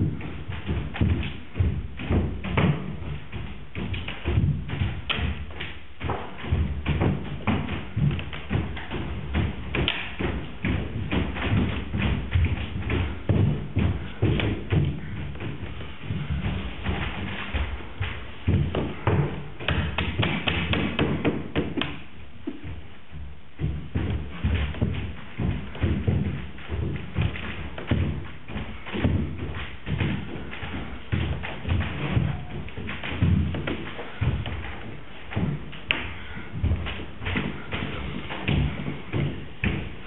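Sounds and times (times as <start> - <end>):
thumps and knocks on wooden floor: 0.0 - 40.0.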